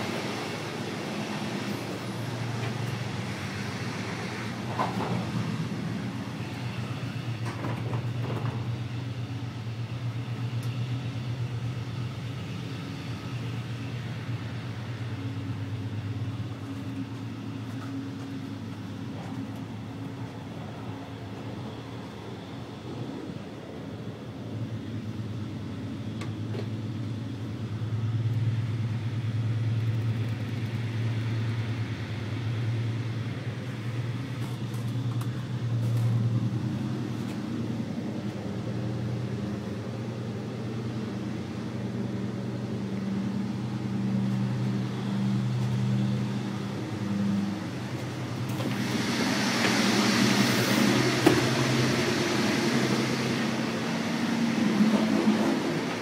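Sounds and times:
train running rumble: 0:00.0 - 0:56.0
rushing hiss: 0:48.4 - 0:56.0.

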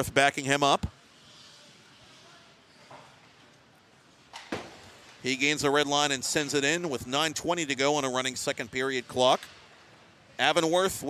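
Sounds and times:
ice hockey rink background: 0:00.0 - 0:11.0.

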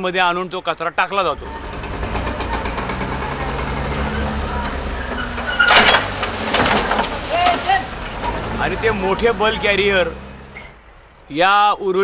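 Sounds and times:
garbage truck engine running: 0:01.2 - 0:10.6.

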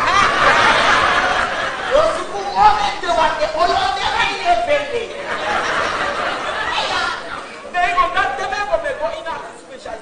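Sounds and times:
background chatter: 0:00.0 - 0:10.0
people talking: 0:00.0 - 0:10.0.

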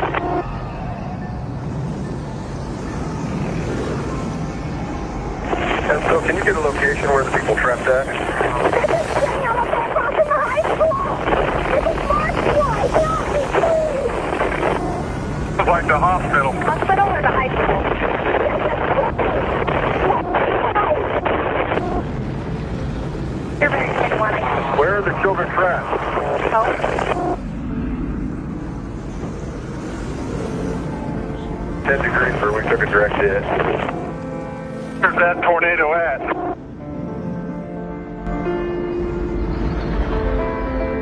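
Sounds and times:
rushing radio static: 0:00.0 - 0:00.5, 0:05.2 - 0:22.4, 0:23.5 - 0:27.4, 0:30.6 - 0:34.2, 0:35.0 - 0:36.6
garbled two-way radio voices: 0:05.5 - 0:22.0, 0:23.6 - 0:27.4, 0:31.8 - 0:34.1, 0:35.0 - 0:36.5
background music: 0:29.8 - 0:41.0.

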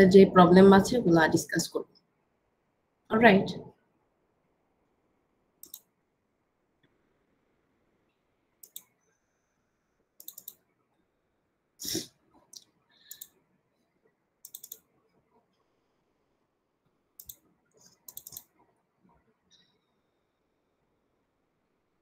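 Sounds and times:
computer mouse clicking: 0:05.6 - 0:05.9, 0:08.6 - 0:09.1, 0:10.2 - 0:10.7, 0:12.5 - 0:13.4, 0:14.4 - 0:14.9, 0:17.2 - 0:18.6.

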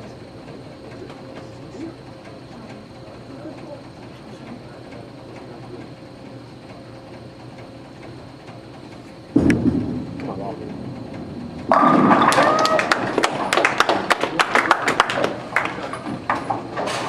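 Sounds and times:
bowling balls rolling and pins falling: 0:11.3 - 0:14.1
bowling ball thud on lane: 0:11.7 - 0:13.2.

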